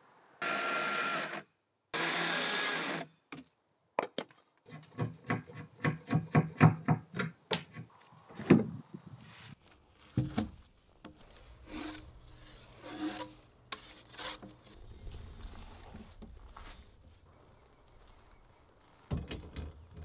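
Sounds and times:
wood rasping strokes: 11.3 - 14.8.

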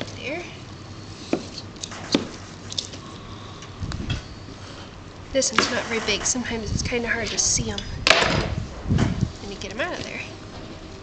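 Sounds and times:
low handling rumble: 0.0 - 11.0.

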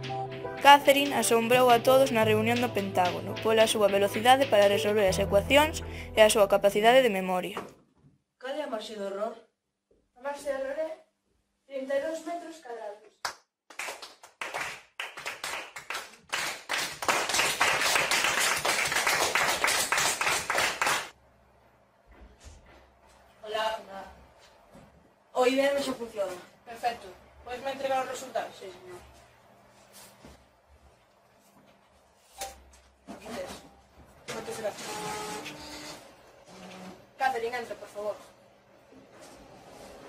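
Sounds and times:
children clapping: 2.5 - 4.8, 13.2 - 21.1
photocopier whirring and hissing: 34.4 - 37.0.

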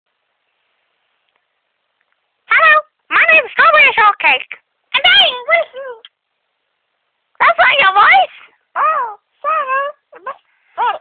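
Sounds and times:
person making squeaky cries: 8.8 - 11.0.

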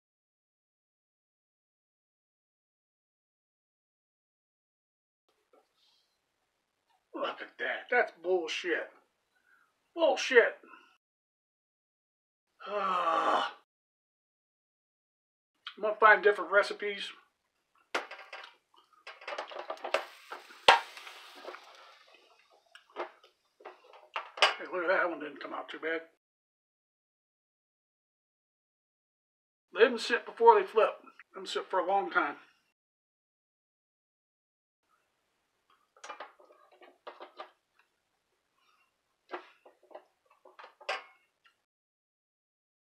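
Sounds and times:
dough hissing on hot plate: 19.9 - 22.3.

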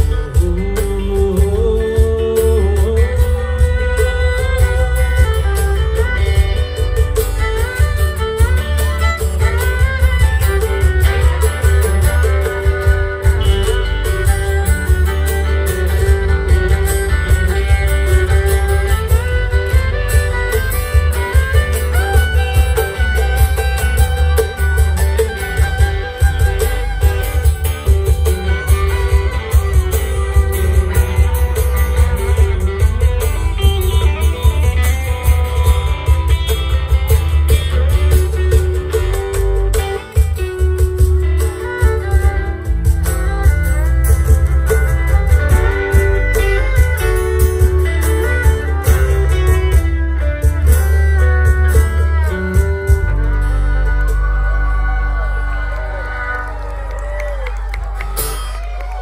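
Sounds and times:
acoustic guitar: 0.0 - 59.0
bass guitar: 0.0 - 59.0
electric guitar lead: 0.0 - 59.0
steady beat: 0.0 - 59.0.

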